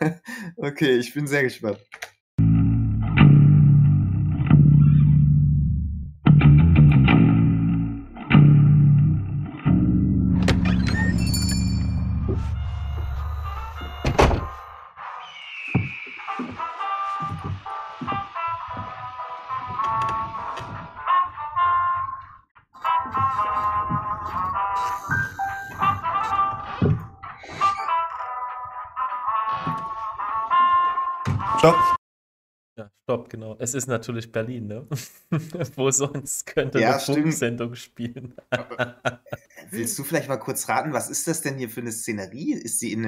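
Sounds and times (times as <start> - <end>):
melodic tune: 11.0 - 14.0, 23.0 - 26.4
sharp thunk: 14.0 - 14.6.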